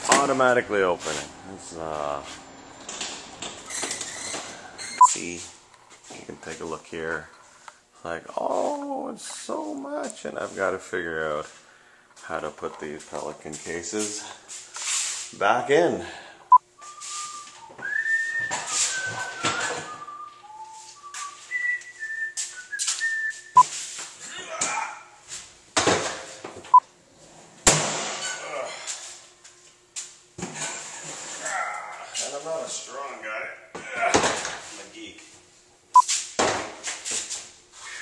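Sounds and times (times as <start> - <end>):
person whistling a tune: 16.8 - 23.6.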